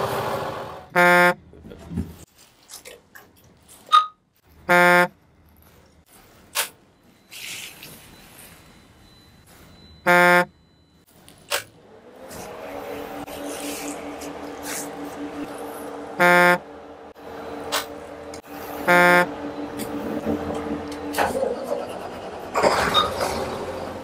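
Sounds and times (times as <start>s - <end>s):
short loud beeps: 7.2s - 11.0s.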